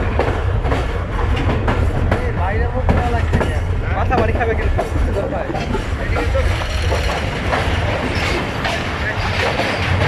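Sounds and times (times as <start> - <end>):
train wheels rumbling on rails: 0.0 - 10.0.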